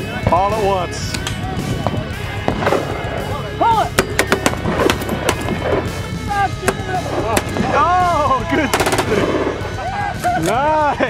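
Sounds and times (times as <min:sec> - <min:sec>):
background music: 0:00.0 - 0:11.0
sharp gunshots: 0:02.4 - 0:03.3, 0:03.9 - 0:06.0, 0:06.6 - 0:07.8, 0:08.6 - 0:09.7.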